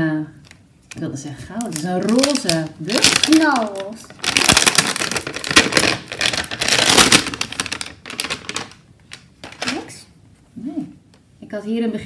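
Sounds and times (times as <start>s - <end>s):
plastic wrapper crinkling and tearing: 0.4s - 10.0s.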